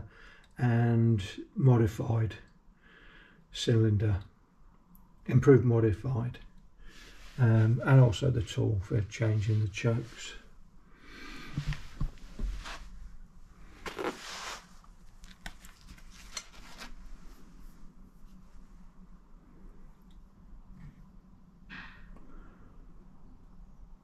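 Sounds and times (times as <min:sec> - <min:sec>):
shotgun handling rustles: 0:13.8 - 0:17.1.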